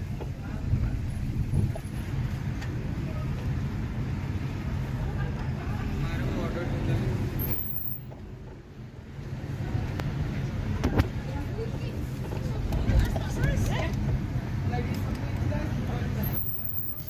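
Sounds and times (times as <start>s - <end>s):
faint street voices: 0.0s - 17.0s.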